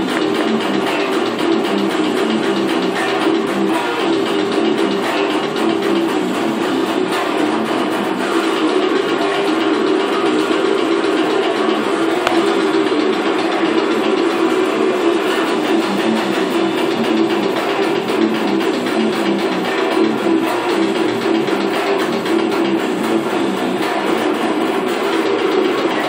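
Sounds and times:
distorted electric guitar riff: 0:00.0 - 0:26.0.

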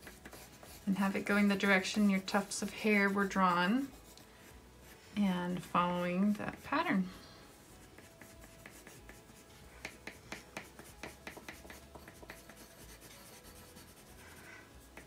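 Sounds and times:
pencils scratching on paper: 0:00.0 - 0:15.0.

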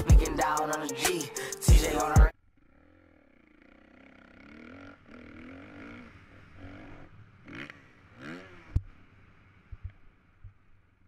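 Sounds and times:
motocross bike engine revving: 0:01.8 - 0:10.0.

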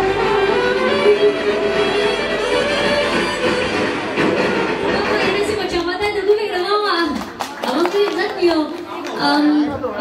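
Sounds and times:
live band with singer: 0:00.0 - 0:10.0.

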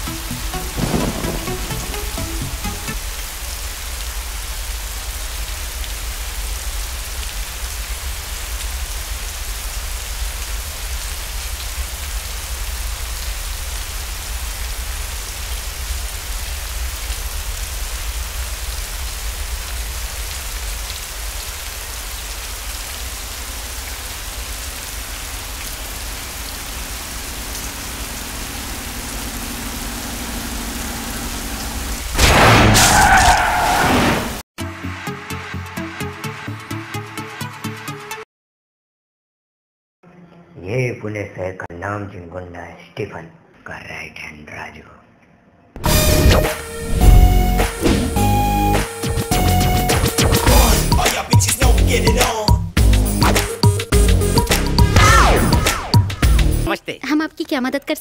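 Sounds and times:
heavy rain pouring: 0:00.0 - 0:34.4, 0:45.8 - 0:52.2.

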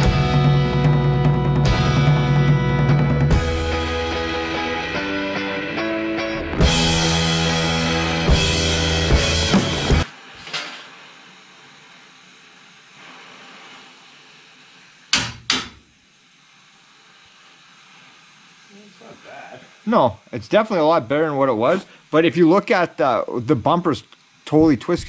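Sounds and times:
rock music with drums: 0:00.0 - 0:10.1
gas torch hissing: 0:00.0 - 0:25.0.

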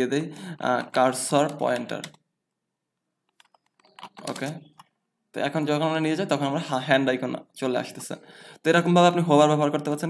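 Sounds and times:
person speaking: 0:00.0 - 0:02.2, 0:03.7 - 0:10.0.

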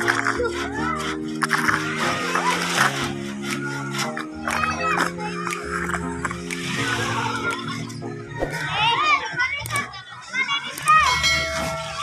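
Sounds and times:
children calling and shouting: 0:00.0 - 0:12.0.

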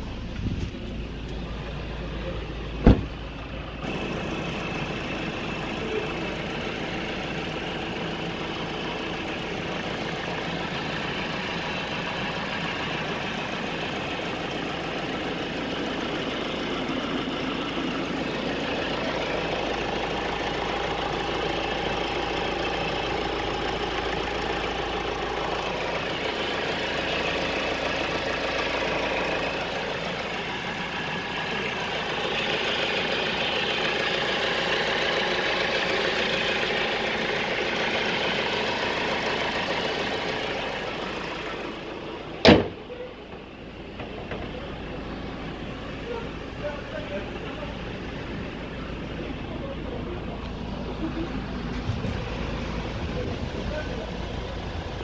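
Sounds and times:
diesel engine idling: 0:00.0 - 0:55.0
loud slam: 0:02.8 - 0:03.2.

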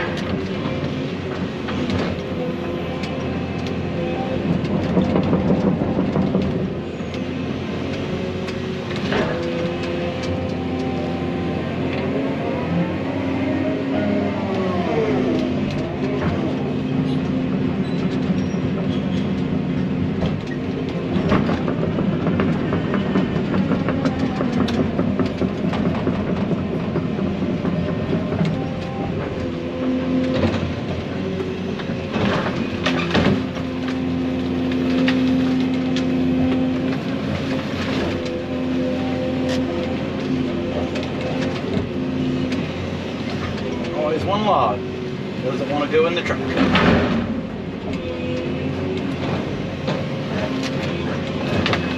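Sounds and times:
excavator engine and hydraulics: 0:00.0 - 0:51.9.

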